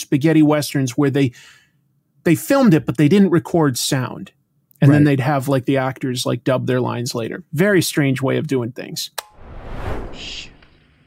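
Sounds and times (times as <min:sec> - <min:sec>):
sharp click: 0:09.2 - 0:09.4
whoosh transition effect: 0:09.2 - 0:11.0.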